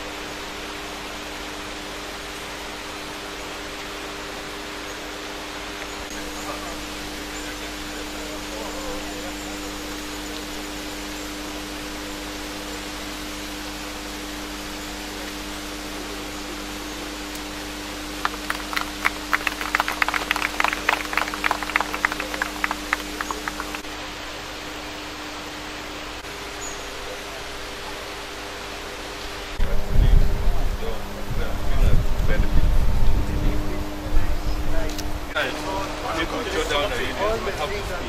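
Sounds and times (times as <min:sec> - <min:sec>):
low electrical hum: 0:00.0 - 0:38.0
steady hiss: 0:00.0 - 0:38.0
people clapping: 0:18.1 - 0:23.9.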